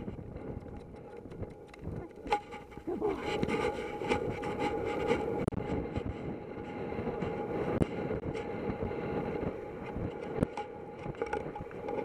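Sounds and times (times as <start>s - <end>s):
wind rush on camera: 0.0s - 12.0s.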